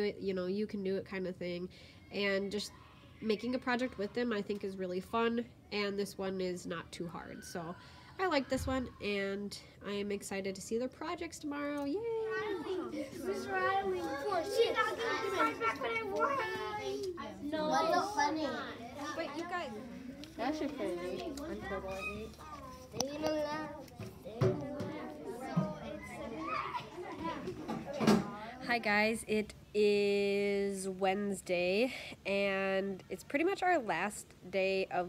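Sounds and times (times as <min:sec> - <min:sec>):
children talking over one another: 0:11.9 - 0:29.1.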